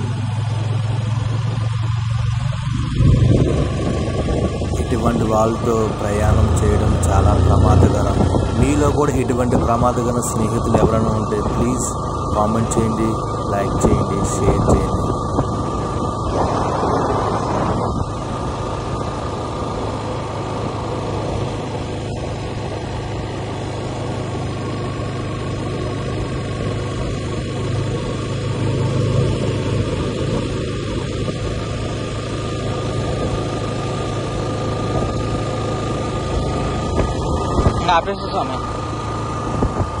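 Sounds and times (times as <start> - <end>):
motorcycle engine running: 0.0 - 40.0
wind noise on microphone: 2.6 - 19.9, 29.0 - 33.8, 34.6 - 40.0.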